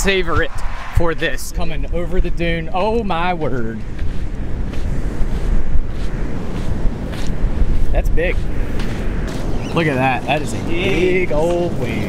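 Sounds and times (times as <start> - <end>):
wind buffeting microphone: 0.0 - 12.0
ocean surf: 5.4 - 12.0.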